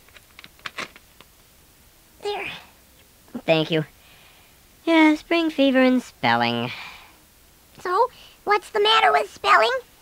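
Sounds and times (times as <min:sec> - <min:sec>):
plastic straw clicking and crinkling: 0:00.0 - 0:01.5.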